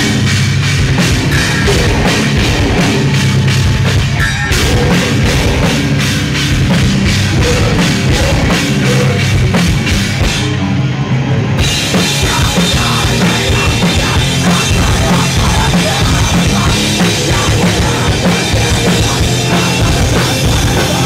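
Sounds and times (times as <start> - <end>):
fast drumming with cymbals: 0.0 - 10.6, 11.6 - 21.0
bass guitar: 0.0 - 21.0
heavy distorted guitars: 0.0 - 21.0.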